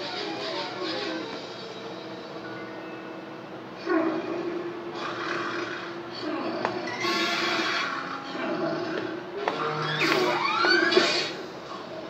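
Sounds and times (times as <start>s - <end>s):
cartoon soundtrack music: 0.0s - 12.0s.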